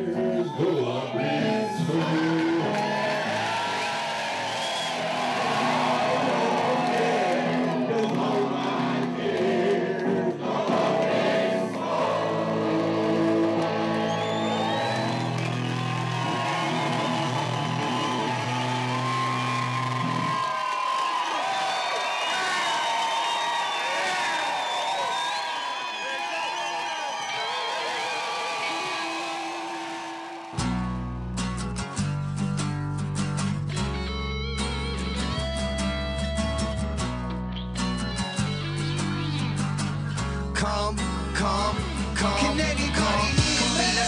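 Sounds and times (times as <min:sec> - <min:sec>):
person singing: 0:00.0 - 0:03.4, 0:05.5 - 0:11.4, 0:12.1 - 0:14.6, 0:40.4 - 0:44.0
electric guitar: 0:00.0 - 0:20.6, 0:29.0 - 0:44.0
audience cheering and clapping: 0:00.8 - 0:09.7, 0:10.4 - 0:31.2.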